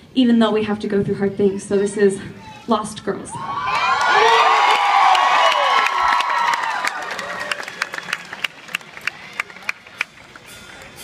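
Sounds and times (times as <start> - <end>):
audience cheering and whooping: 3.3 - 9.7
scattered claps: 5.1 - 11.0.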